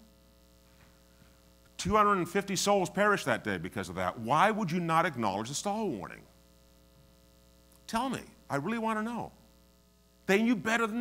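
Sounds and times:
faint electrical mains hum: 0.0s - 11.0s
man talking: 1.8s - 6.3s, 7.9s - 9.4s, 10.3s - 11.0s.

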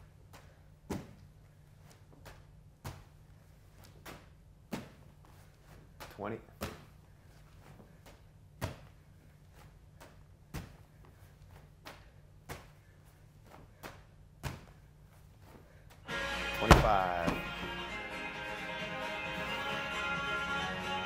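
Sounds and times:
medicine ball thudding against wall: 14.4s - 14.8s, 16.6s - 17.6s.

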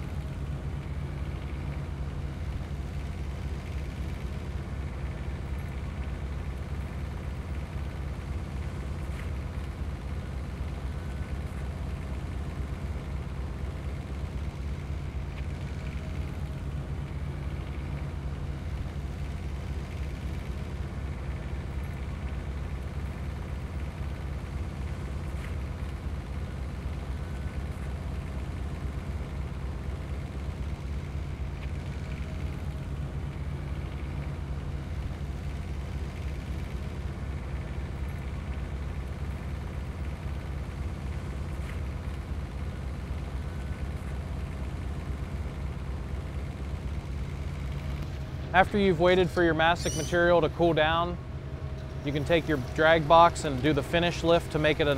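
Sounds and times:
diesel engine running: 0.0s - 54.9s.

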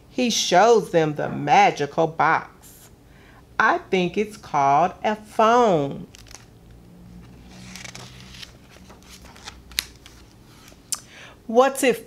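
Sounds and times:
book page turning: 6.1s - 10.9s.

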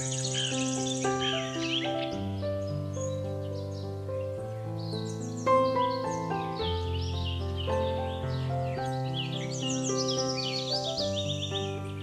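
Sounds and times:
birds chirping: 0.0s - 12.0s
soothing piano music: 0.0s - 12.0s.

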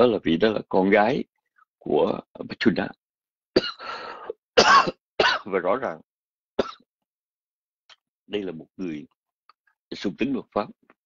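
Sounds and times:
person coughing: 3.6s - 4.0s, 4.6s - 5.5s.

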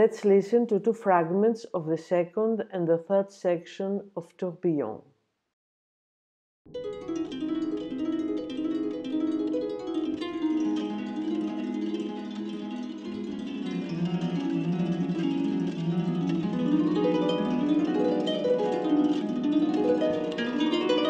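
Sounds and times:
harp with electronics: 6.7s - 21.0s.

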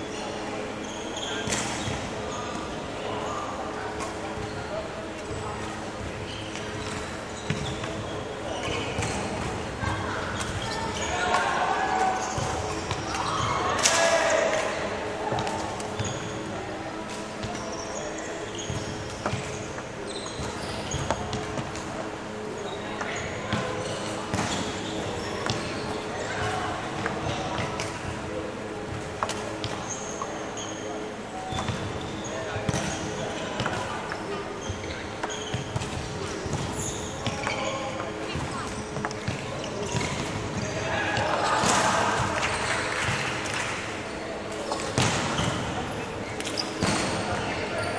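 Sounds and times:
shoe squeaks: 0.0s - 43.2s, 44.1s - 47.9s
voices in a hall: 0.0s - 47.9s
racket hitting shuttlecock: 10.4s - 16.1s, 18.7s - 19.6s, 29.0s - 29.8s, 32.7s - 33.9s, 35.2s - 37.6s, 41.2s - 43.7s, 44.5s - 45.6s.

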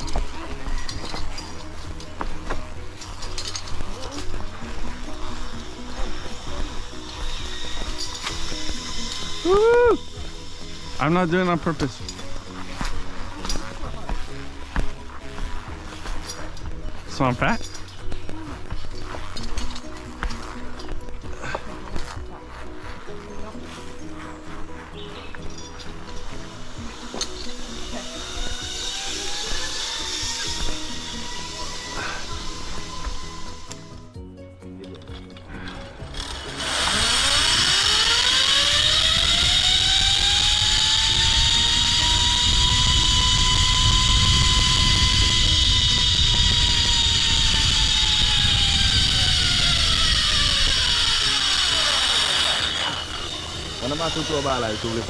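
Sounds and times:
zipline pulley whine: 0.0s - 34.2s, 34.8s - 55.0s.

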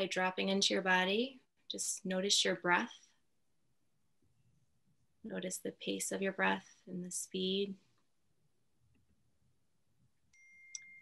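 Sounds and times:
high-pitched ringing tone: 10.3s - 11.0s.

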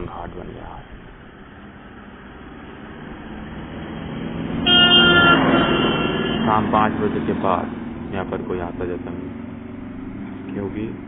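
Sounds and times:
motor vehicle approaching: 0.0s - 11.0s
vehicle horn honking: 4.6s - 6.7s.

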